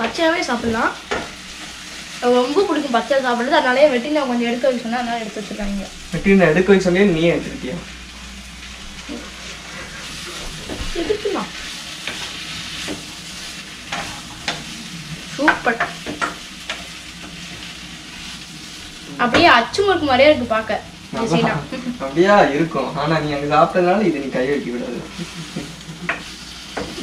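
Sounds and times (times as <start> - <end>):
slices sizzling in hot oil: 0.0 - 27.0
spatula scraping in pan: 9.0 - 19.0.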